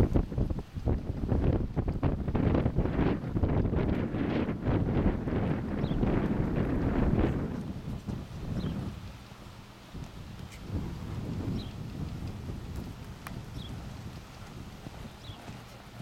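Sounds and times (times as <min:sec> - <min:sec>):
wind on microphone: 0:00.0 - 0:16.0.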